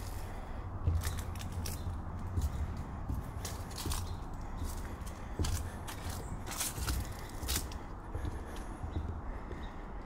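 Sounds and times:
dry leaves crackling underfoot: 0.0s - 7.9s
footsteps on wooden boards: 0.0s - 10.0s.

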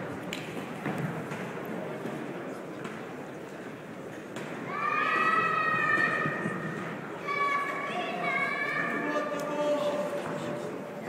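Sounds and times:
murmur of spectators: 0.0s - 11.0s.

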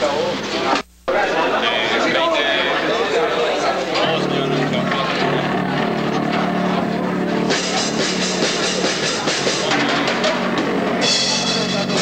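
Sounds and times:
crowd noise and voices: 0.0s - 12.0s
amplified low droning note: 4.0s - 9.0s
rock drum kit with cymbals: 4.5s - 12.0s.

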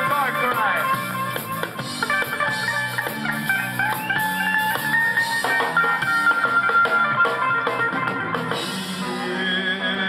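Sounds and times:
ska band playing live: 0.0s - 10.0s
sliding guitar notes: 0.0s - 10.0s.

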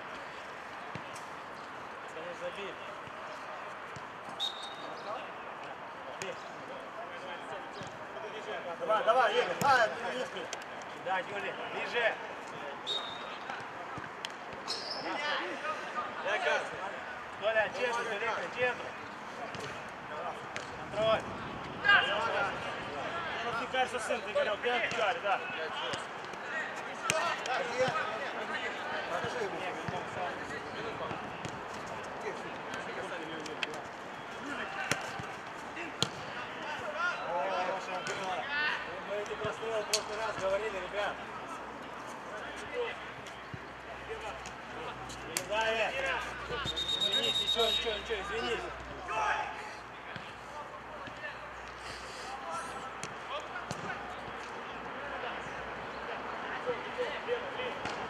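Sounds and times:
players calling and shouting: 0.0s - 58.0s.

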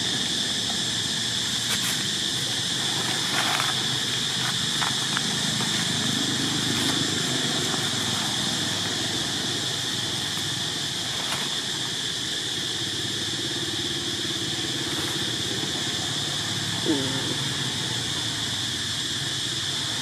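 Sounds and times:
insects chorus drone: 0.0s - 20.0s.

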